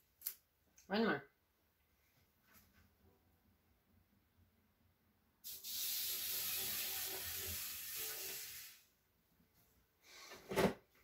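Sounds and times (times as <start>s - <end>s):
spray-like hiss: 5.4s - 8.9s.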